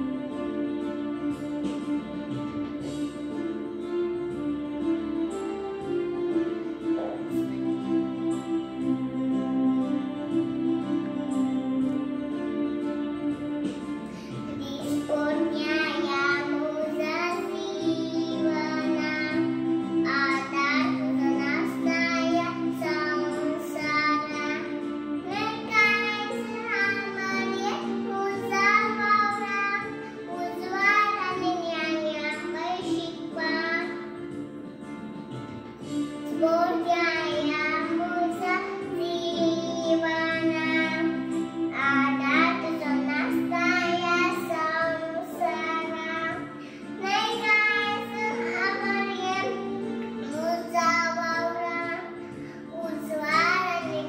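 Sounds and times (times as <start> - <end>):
sustained instrumental accompaniment: 0.0 - 54.0
young girl singing: 13.7 - 34.6, 35.8 - 54.0.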